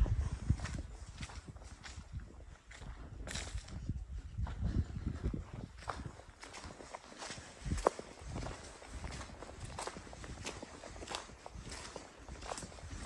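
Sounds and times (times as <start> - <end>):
footsteps crunching on leaves: 5.8 - 13.0.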